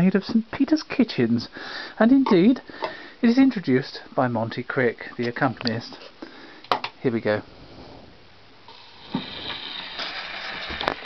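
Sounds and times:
record surface hiss and crackle: 0.0 - 11.0
sharp clicks from record: 5.2 - 5.8.

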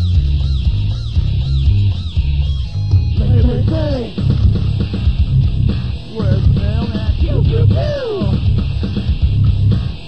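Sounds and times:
bass-heavy guitar riff: 0.0 - 10.0.

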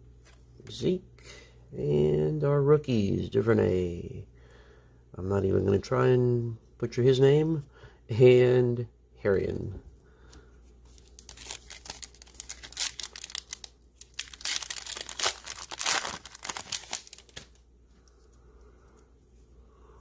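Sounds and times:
plastic wrapper tearing and crinkling: 10.9 - 17.6.

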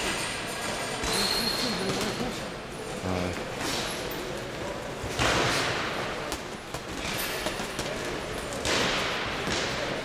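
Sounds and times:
boxing gym background: 0.0 - 10.0.

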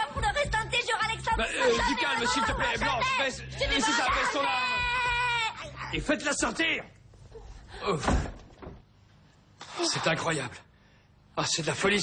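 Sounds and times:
door slamming shut: 8.0 - 8.9.

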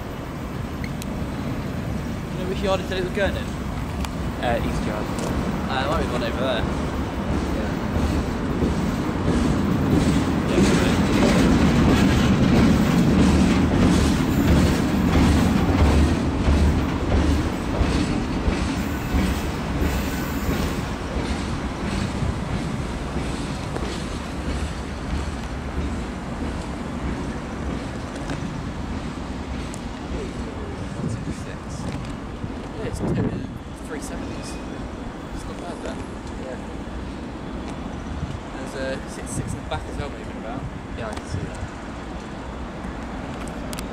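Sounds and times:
diesel locomotive rumbling: 0.0 - 43.9
train wheels clicking over rail joints: 2.2 - 33.2.

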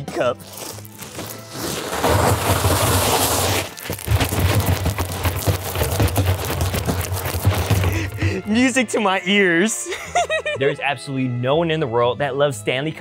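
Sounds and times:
ice cubes clattering into tumbler: 0.8 - 8.1.

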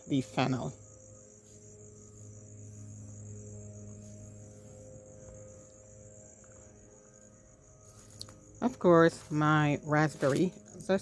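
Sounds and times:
crickets chirring: 0.0 - 11.0
distant motor hum: 0.0 - 11.0.

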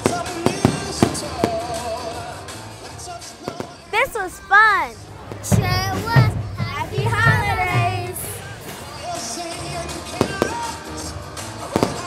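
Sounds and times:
fireworks bursting with sharp bangs: 0.0 - 2.0, 3.4 - 9.4, 10.0 - 12.0
background music: 0.0 - 12.0.

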